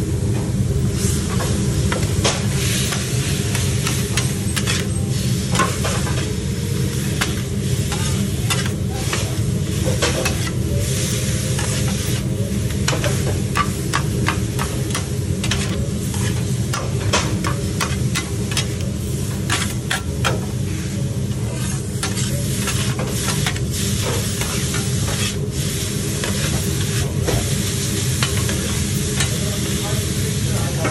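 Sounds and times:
constant low hum: 0:00.0 - 0:30.0
metal spatulas clacking on griddle: 0:02.2 - 0:04.9, 0:07.2 - 0:09.2, 0:12.8 - 0:20.4.

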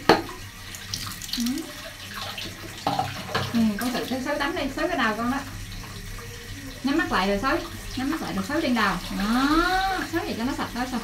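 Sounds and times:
water dribbling: 0:00.0 - 0:11.0
water splashing into bathtub: 0:00.0 - 0:11.0.

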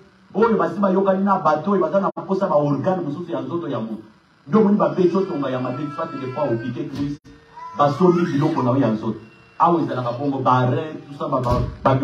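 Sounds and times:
man preaching into microphone: 0:00.4 - 0:12.0.

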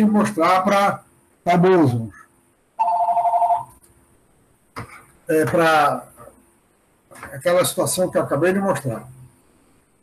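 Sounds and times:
telephone two-tone ring: 0:02.8 - 0:03.7.

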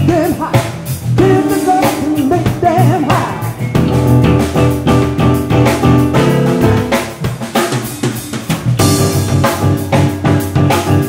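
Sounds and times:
drum kit: 0:00.0 - 0:11.0
electric bass: 0:00.0 - 0:11.0
keyboard: 0:00.0 - 0:11.0.

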